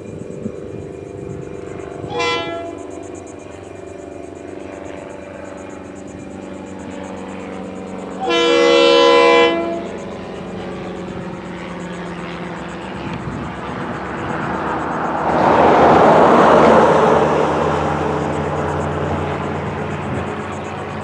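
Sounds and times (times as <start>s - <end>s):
diesel locomotive engine drone: 0.0s - 21.0s
locomotive air horn: 2.0s - 3.0s, 8.2s - 10.1s.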